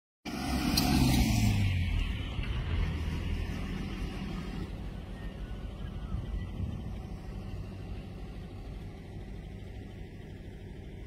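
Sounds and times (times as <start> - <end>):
vehicle engine running: 0.3 - 11.0.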